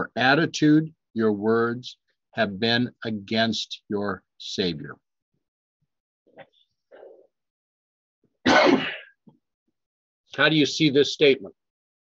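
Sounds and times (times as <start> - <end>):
man clearing his throat: 8.4 - 9.2.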